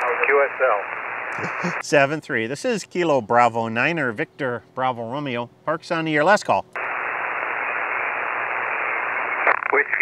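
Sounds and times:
radio band noise hiss: 0:00.0 - 0:01.9, 0:06.8 - 0:10.0.

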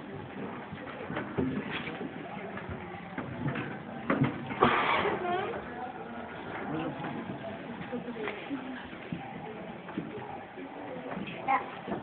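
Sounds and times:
murmur of voices in a hall: 0:00.0 - 0:12.0.

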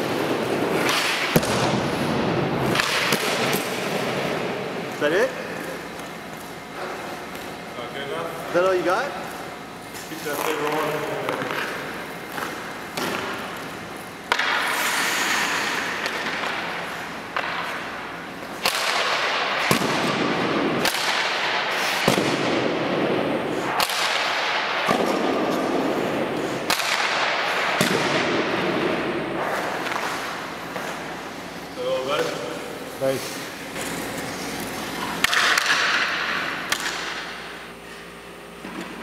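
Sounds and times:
hockey stick firing pucks: 0:00.0 - 0:07.6, 0:10.3 - 0:31.4, 0:33.7 - 0:37.6
echo in ice arena: 0:00.0 - 0:39.0.

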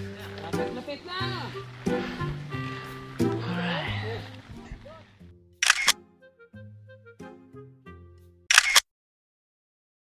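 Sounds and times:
quiet background music: 0:00.0 - 0:08.4
camera shutter sound effect: 0:05.6 - 0:06.0, 0:08.5 - 0:08.9.

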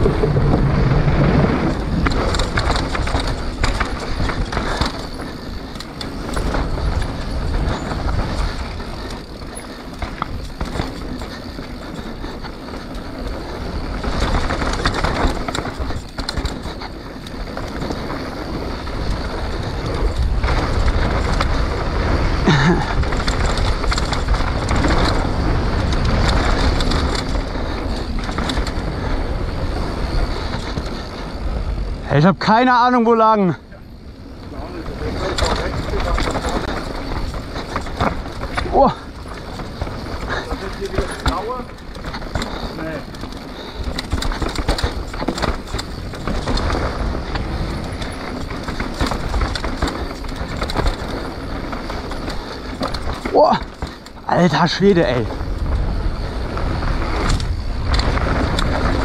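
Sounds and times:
bike chain and frame rattling: 0:00.0 - 0:59.0
bike tyres rolling on dirt: 0:00.0 - 0:59.0
wind rumbling on microphone: 0:00.0 - 0:59.0.

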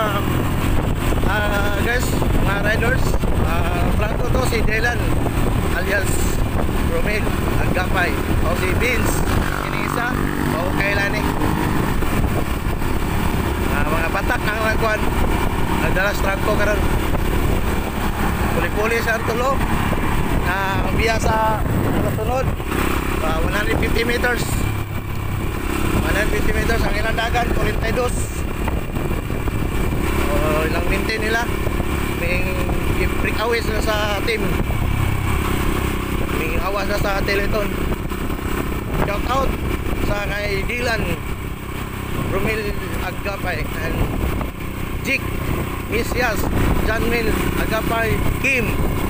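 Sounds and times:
voices: 0:00.0 - 0:00.4, 0:01.2 - 0:11.8, 0:13.4 - 0:24.8, 0:25.9 - 0:28.6, 0:30.0 - 0:34.8, 0:36.2 - 0:37.8
motorcycle engine running: 0:00.0 - 0:49.0.

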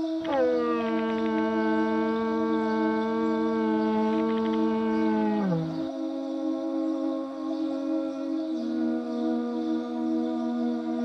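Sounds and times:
steady low drone: 0:00.0 - 0:11.0
plastic tube blown like a horn: 0:00.2 - 0:05.8.

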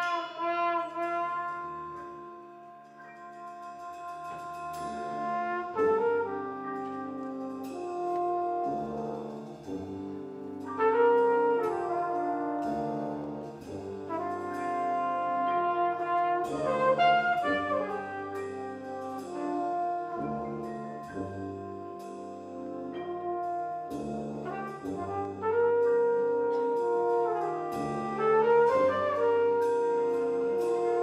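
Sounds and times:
jazz big band playing: 0:00.0 - 0:31.0.

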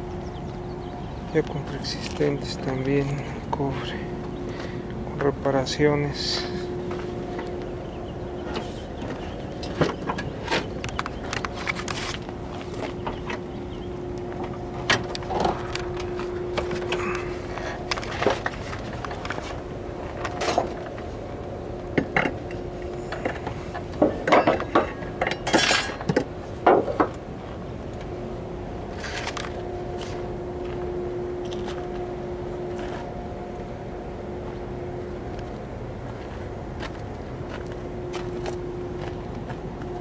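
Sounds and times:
steady low hum: 0:00.0 - 0:40.0.

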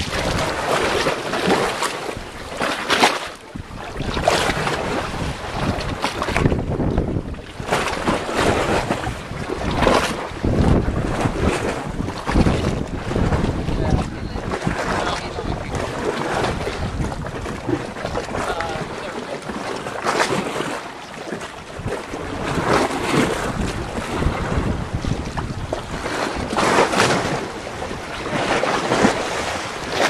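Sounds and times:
seawater sloshing and lapping: 0:00.0 - 0:30.0
wind buffeting microphone: 0:00.0 - 0:30.0.

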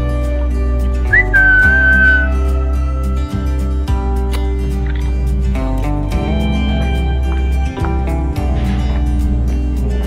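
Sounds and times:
background guitar music: 0:00.0 - 0:10.0
woman whistling: 0:01.1 - 0:02.4.

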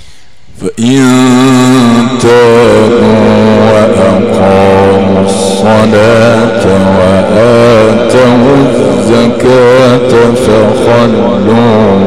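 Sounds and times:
man chanting through loudspeaker: 0:00.0 - 0:12.0.

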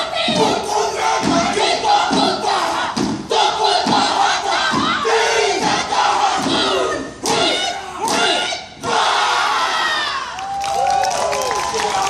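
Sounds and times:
group shouting a chant: 0:00.0 - 0:10.4.

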